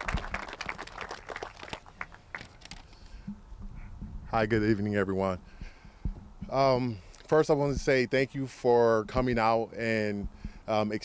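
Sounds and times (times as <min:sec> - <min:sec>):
audience applause: 0:00.0 - 0:02.7.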